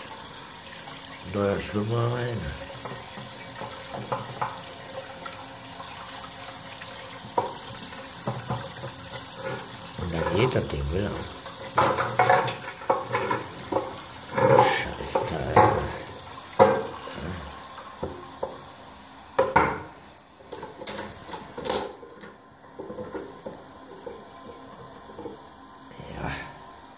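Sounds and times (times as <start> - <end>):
hard fittings knocking and clattering: 7.2 - 10.6, 11.5 - 16.0.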